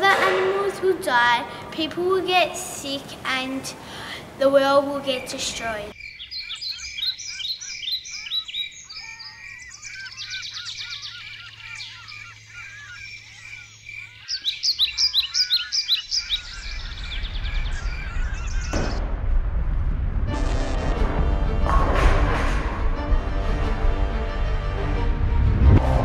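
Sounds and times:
birds chirping and singing: 5.0 - 19.0
low rumble: 16.4 - 26.0
sudden surge of noise: 16.6 - 26.0.

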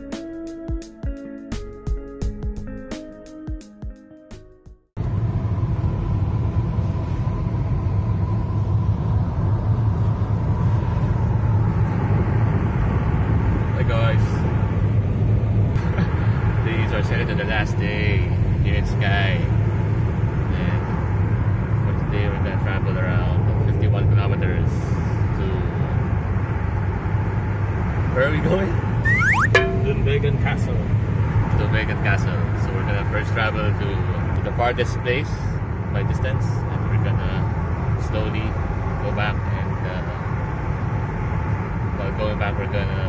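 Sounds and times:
car engine and road noise: 4.4 - 43.0.

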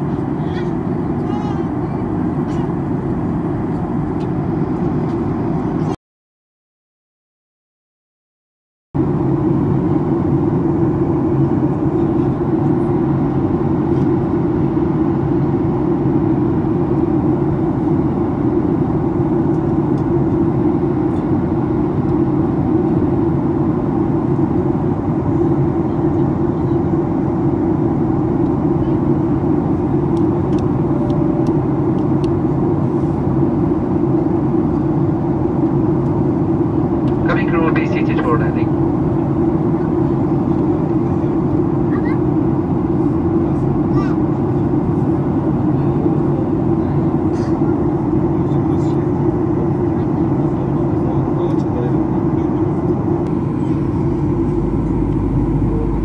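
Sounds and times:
airliner cabin rush: 27.4 - 56.0.

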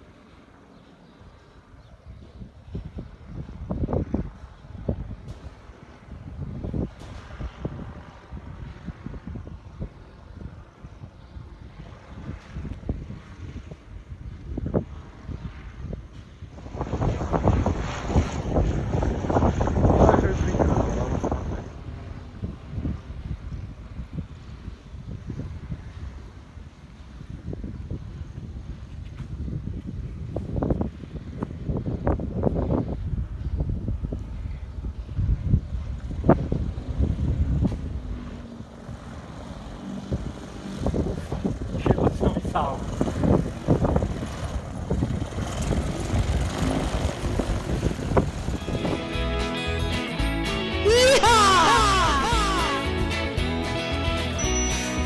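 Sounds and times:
wind buffeting microphone: 1.3 - 49.4.

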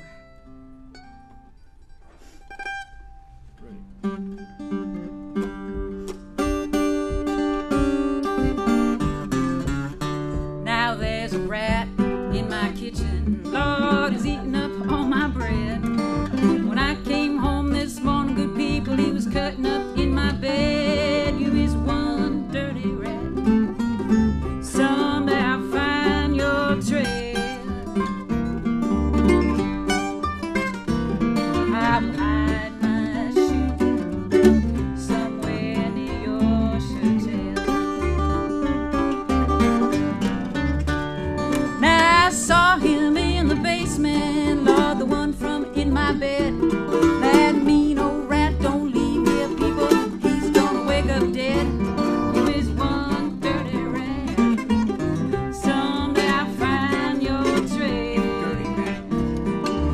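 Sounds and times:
acoustic string band swing tune: 0.0 - 59.9.

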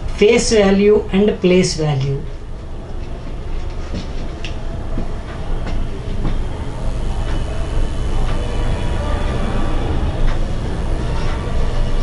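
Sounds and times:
loud steady low rumble: 4.4 - 12.0.

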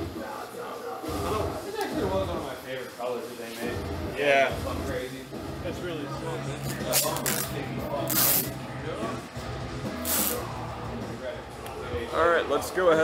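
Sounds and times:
background music: 3.7 - 13.0
spray bottle spritzing: 10.0 - 10.4.

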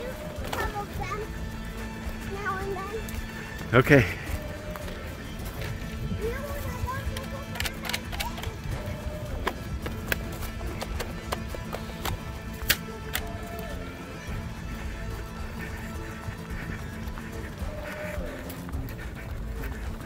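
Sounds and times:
background music: 0.0 - 20.0
running footsteps on leafy trail: 0.0 - 20.0.

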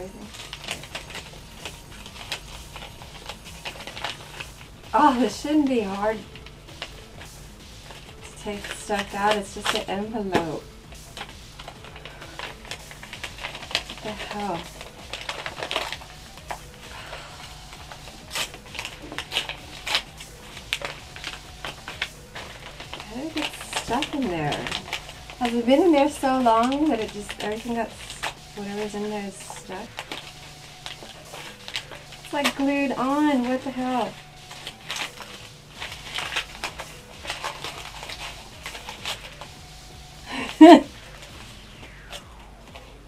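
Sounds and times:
paper envelope rustling: 0.0 - 43.0.

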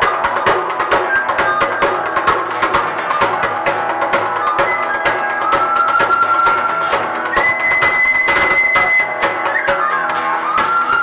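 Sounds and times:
percussion strikes: 0.0 - 11.0
plucked acoustic guitar: 0.0 - 11.0
high whistle-like wind instrument: 4.2 - 11.0.

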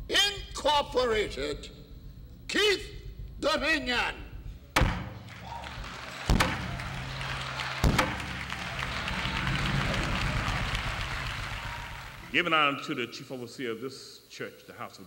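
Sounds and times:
congregation applauding: 5.2 - 12.6.

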